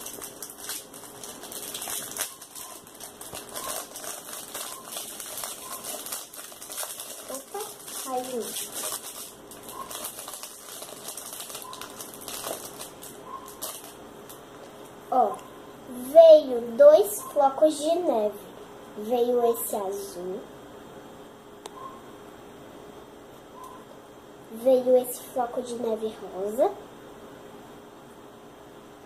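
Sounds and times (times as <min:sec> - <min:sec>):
plastic packet crinkling: 0:00.0 - 0:15.0.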